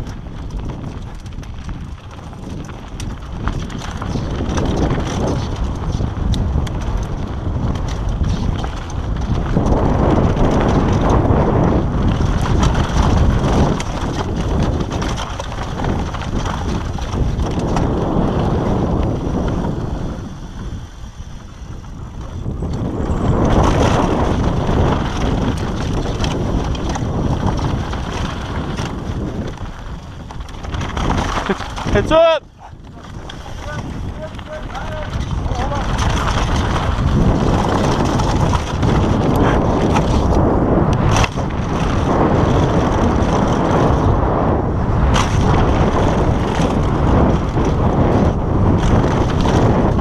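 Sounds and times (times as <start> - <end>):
bike tyres rattling over rough ground: 0.0 - 50.0
wind rushing over microphone: 0.0 - 50.0.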